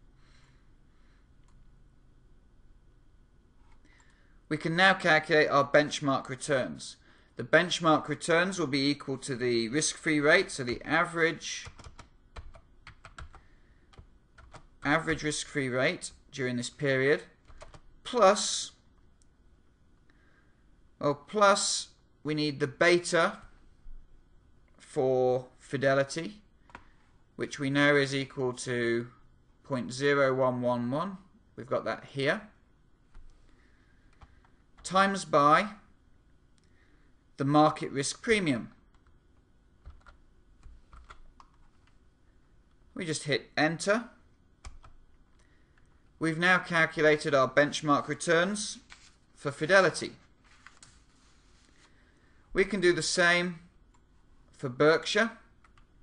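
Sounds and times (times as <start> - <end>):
faint typing on computer keyboard: 11.6 - 15.3, 17.4 - 18.0, 26.6 - 27.0, 34.0 - 34.9, 38.7 - 42.0, 44.6 - 46.1, 55.6 - 56.0.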